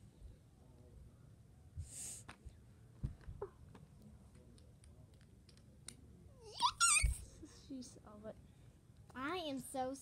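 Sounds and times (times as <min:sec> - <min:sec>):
child squealing: 0:06.4 - 0:07.2.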